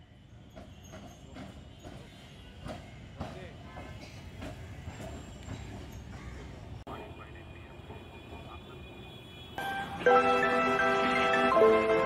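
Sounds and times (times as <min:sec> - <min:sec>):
tram rumbling on rails: 0:00.0 - 0:12.0
tram wheels clicking and knocking: 0:00.4 - 0:06.9.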